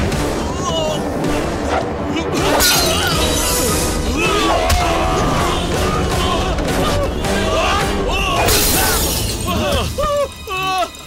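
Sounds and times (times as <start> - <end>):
glass bottle smashing: 2.6 - 3.7.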